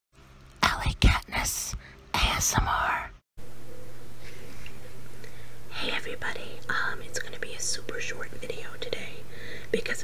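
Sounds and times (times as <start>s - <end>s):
woman whispering: 0.6s - 3.2s, 5.7s - 10.0s.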